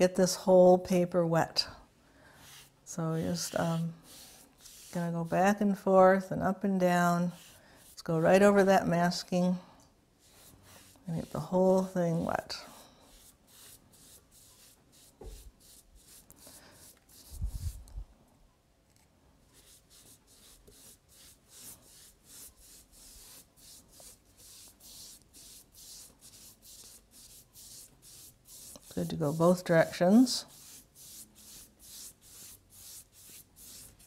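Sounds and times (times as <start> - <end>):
foam brush swishing on wet paper: 2.3 - 5.8, 6.7 - 9.4, 10.2 - 18.0, 19.5 - 34.0.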